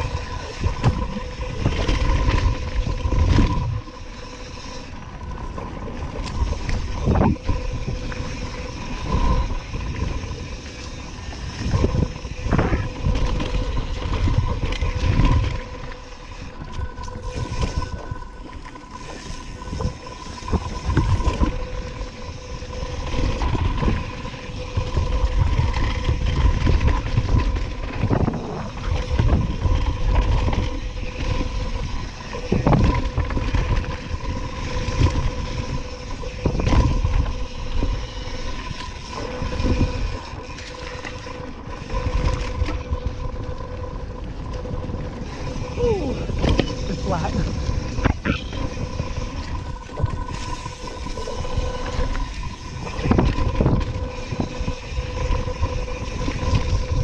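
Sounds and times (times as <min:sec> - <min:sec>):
faint steady hum: 0:00.0 - 0:57.0
knobby tyre noise on dirt: 0:00.0 - 0:57.0
wind rush on camera: 0:00.0 - 0:57.0.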